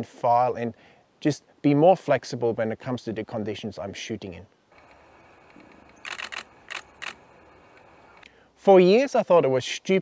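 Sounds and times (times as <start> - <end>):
faint steady hiss: 0.0 - 10.0
camera shutter clicks: 4.8 - 8.2.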